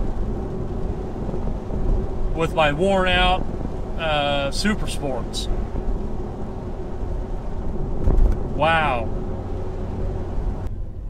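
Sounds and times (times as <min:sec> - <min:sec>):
low engine drone: 0:00.0 - 0:11.0.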